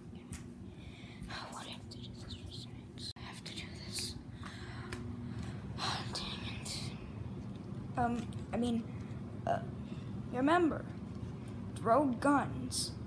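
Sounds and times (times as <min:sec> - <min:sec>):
steady low hum: 0:00.0 - 0:13.0
person whispering: 0:01.3 - 0:04.2, 0:05.8 - 0:07.0.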